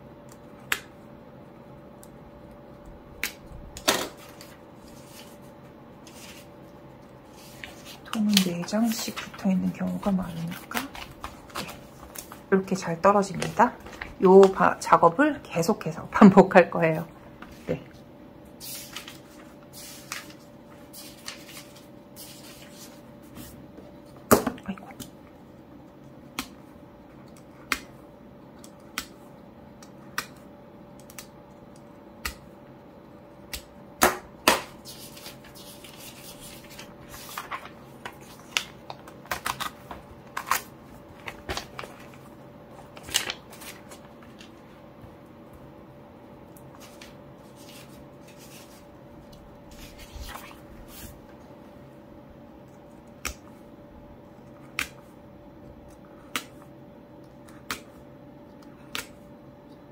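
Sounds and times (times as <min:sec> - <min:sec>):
paper crinkling and snapping: 0:03.2 - 0:14.7, 0:18.6 - 0:23.0, 0:33.4 - 0:44.7.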